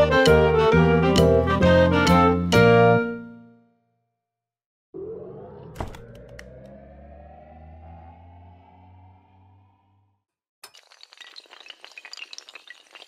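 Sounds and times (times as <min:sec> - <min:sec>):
low hum: 0:04.9 - 0:10.2
rising ringing sweep: 0:05.0 - 0:10.2
tiles collapsing clatter: 0:10.6 - 0:13.0.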